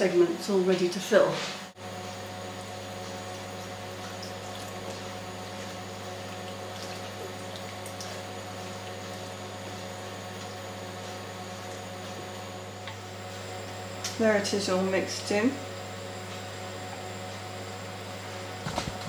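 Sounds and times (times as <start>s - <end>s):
electrical hum: 0.0s - 19.0s.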